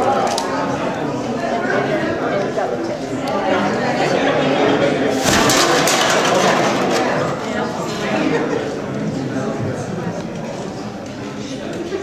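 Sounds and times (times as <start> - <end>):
cans and bottles clinking: 5.2 - 7.4
plastic bags rustling: 5.2 - 7.4.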